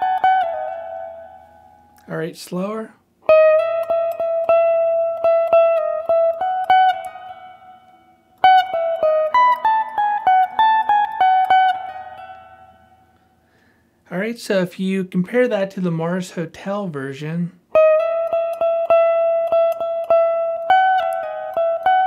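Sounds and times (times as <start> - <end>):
electric guitar lead: 0.0 - 2.1, 3.2 - 13.7, 17.7 - 22.0.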